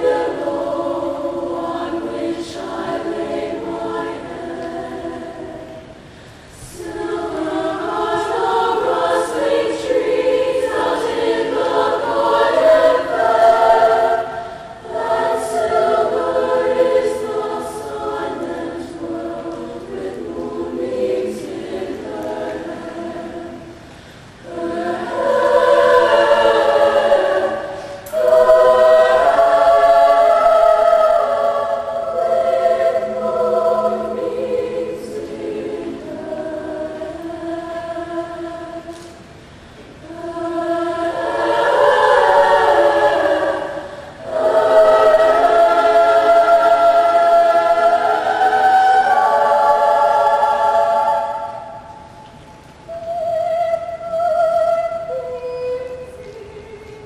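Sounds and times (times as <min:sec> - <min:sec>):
women's choir singing: 0:00.0 - 0:57.0.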